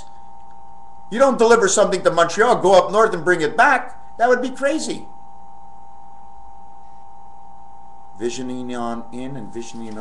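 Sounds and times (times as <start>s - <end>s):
mid-pitched whine: 0.0s - 10.0s
steady background hum: 0.0s - 10.0s.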